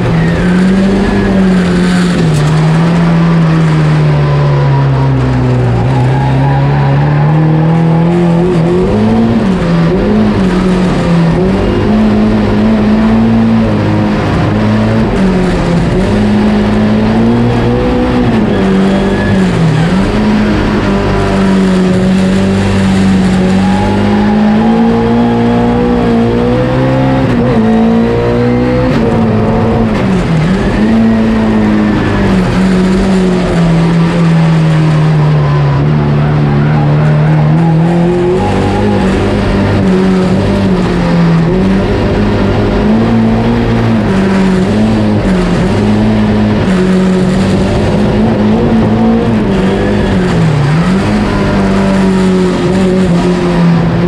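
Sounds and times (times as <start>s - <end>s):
car engine pulling hard: 0.0s - 54.0s.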